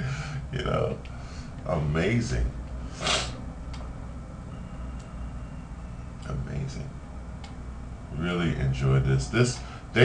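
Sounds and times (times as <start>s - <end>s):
steady low hum: 0.0s - 10.0s
faint clicks: 7.4s - 7.6s.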